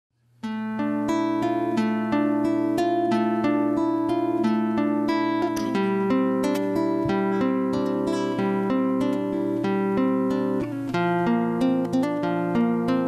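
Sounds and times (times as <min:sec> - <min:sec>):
fingerpicked acoustic guitar: 0:00.2 - 0:13.0.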